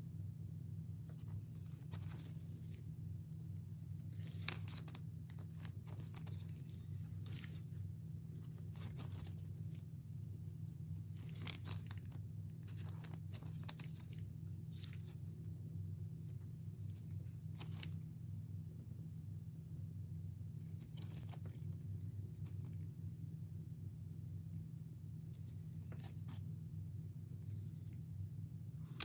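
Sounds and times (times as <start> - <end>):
steady low hum: 0.0 - 29.0
plastic sleeves crinkling: 0.9 - 15.6, 16.2 - 18.4, 20.6 - 22.9, 25.3 - 26.5.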